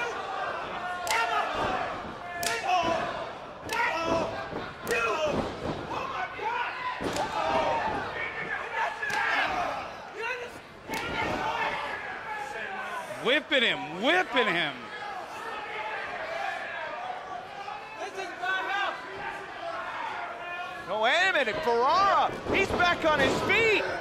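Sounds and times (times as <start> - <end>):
crowd shouting: 0.0 - 20.9.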